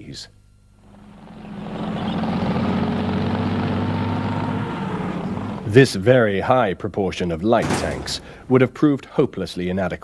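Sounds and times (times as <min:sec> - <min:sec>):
heavy engine running: 0:00.8 - 0:05.8.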